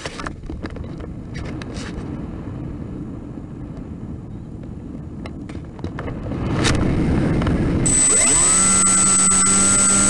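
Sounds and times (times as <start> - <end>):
wind rushing over microphone: 0.0 - 10.0.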